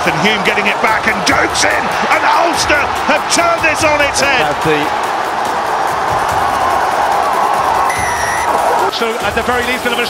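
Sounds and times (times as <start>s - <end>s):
stadium crowd cheering: 0.0s - 10.0s
high whistle-like tone: 7.9s - 8.5s.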